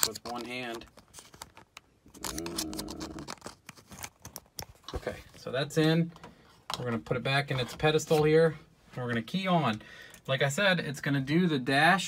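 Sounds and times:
person humming: 0:02.2 - 0:03.3.

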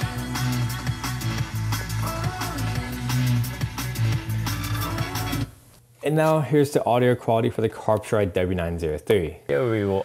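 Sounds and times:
music through car speakers: 0:00.0 - 0:05.6.

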